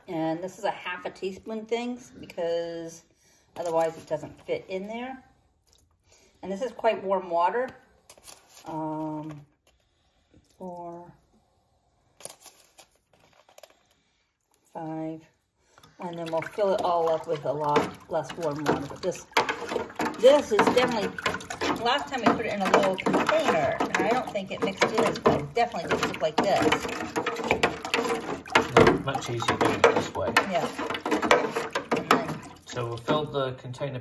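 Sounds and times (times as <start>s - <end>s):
hand stirring water in a tub: 15.7s - 33.7s
water splashing: 15.8s - 33.5s
metal spoon tapping reservoir: 17.0s - 33.2s.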